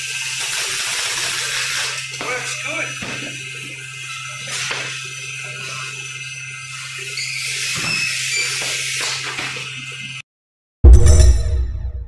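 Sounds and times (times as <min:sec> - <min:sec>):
machine humming and hissing: 0:00.0 - 0:10.2.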